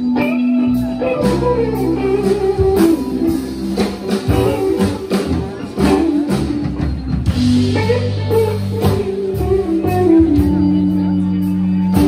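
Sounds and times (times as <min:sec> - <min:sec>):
drum kit beat: 0:00.0 - 0:12.0
electric bass: 0:00.0 - 0:12.0
electric guitar: 0:00.0 - 0:12.0.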